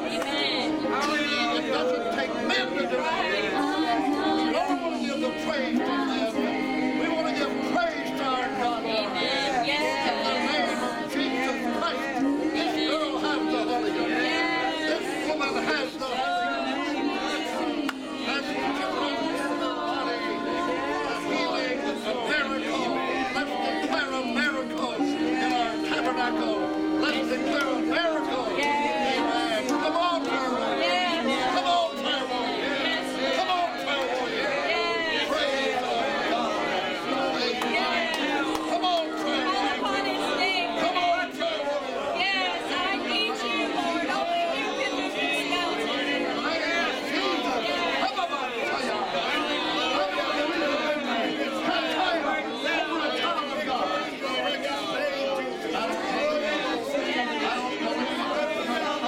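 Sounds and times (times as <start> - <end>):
voices praying aloud: 0.0 - 59.0.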